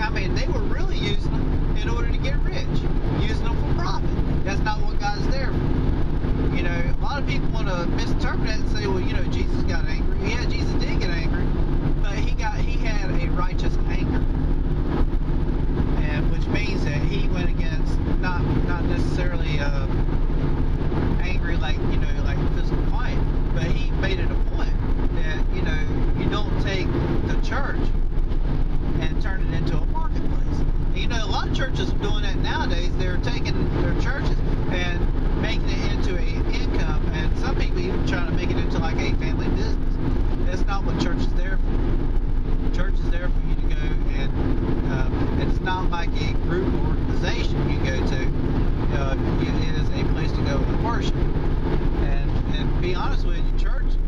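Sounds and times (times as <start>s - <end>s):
man talking: 0.0s - 5.6s, 6.4s - 14.3s, 15.8s - 20.2s, 21.1s - 28.0s, 28.8s - 41.7s, 42.6s - 51.3s, 51.9s - 54.0s
car cabin drone: 0.0s - 54.0s.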